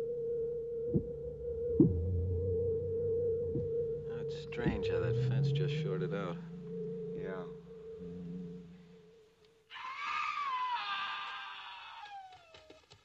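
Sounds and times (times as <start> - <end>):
steady hum: 0.0 - 9.6
high scream-like cry: 9.7 - 12.6.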